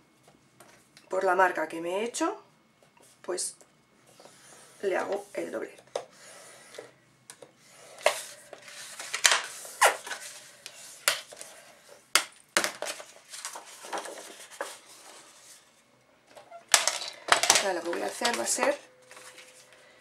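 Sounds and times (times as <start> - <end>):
paper rustling: 12.7 - 15.6, 16.7 - 19.7.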